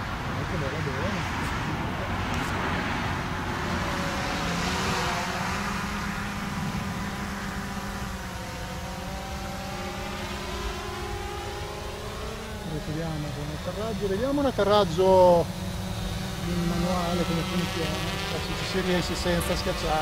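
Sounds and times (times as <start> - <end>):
drone propellers humming: 0.0 - 20.0.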